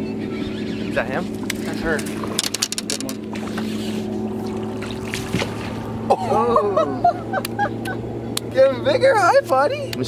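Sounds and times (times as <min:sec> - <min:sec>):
boat motor humming: 0:00.0 - 0:10.0.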